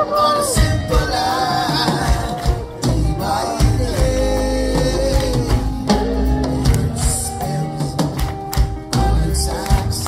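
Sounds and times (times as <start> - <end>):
live reggae band: 0.0 - 10.0.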